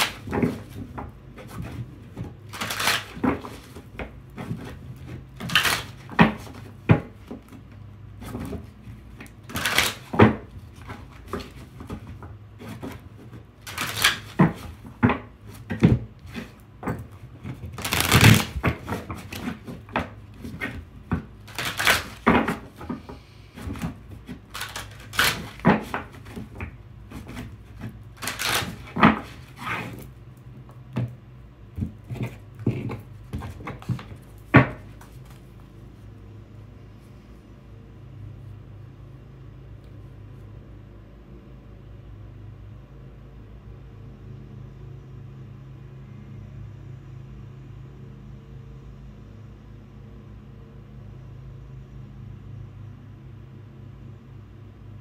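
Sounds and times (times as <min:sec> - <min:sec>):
cards shuffling and flicking: 0:00.0 - 0:07.6, 0:08.2 - 0:30.1
low steady hum: 0:00.0 - 0:55.0.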